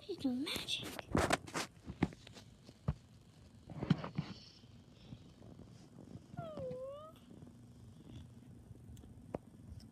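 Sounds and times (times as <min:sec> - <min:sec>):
puppy whining: 0:06.2 - 0:07.4.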